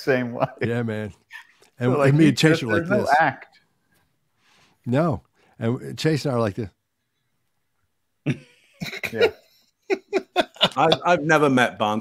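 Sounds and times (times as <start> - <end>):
man coughing: 8.3 - 9.4.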